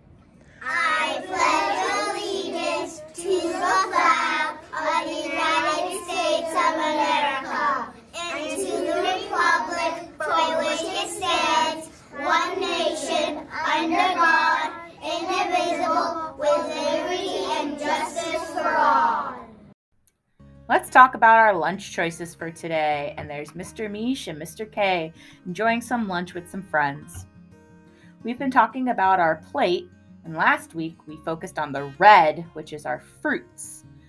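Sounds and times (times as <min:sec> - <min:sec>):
children reciting in unison: 0:00.6 - 0:19.5.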